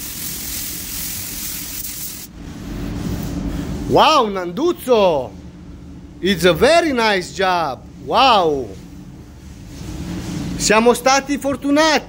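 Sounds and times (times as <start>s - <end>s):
paint spray gun hissing: 0.0s - 2.3s
low steady hum: 0.2s - 12.0s.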